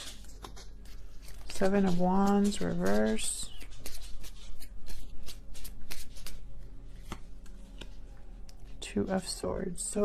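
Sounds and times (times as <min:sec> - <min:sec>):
cards being shuffled: 0:00.0 - 0:08.7.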